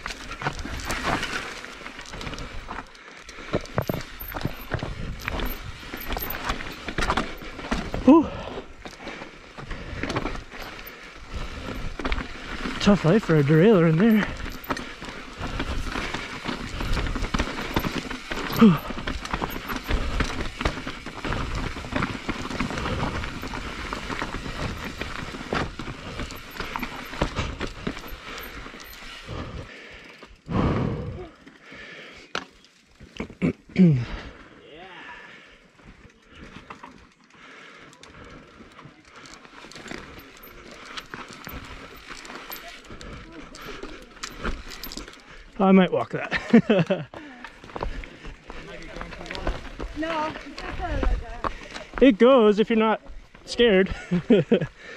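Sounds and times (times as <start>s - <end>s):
bike clattering over stones: 0.0s - 30.5s, 36.1s - 52.1s
bike tyres crunching on rocks: 0.0s - 30.5s, 35.8s - 54.9s
man breathing hard: 6.9s - 12.6s, 14.2s - 32.3s, 37.3s - 45.6s, 54.7s - 54.9s
man sighing: 8.0s - 8.7s, 33.4s - 35.3s
man clearing throat: 33.2s - 34.1s.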